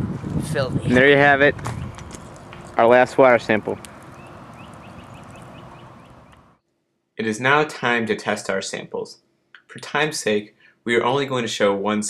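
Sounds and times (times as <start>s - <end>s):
steady outdoor hiss: 0.0s - 6.6s, 7.2s - 12.0s
small bird chirping: 3.8s - 6.6s.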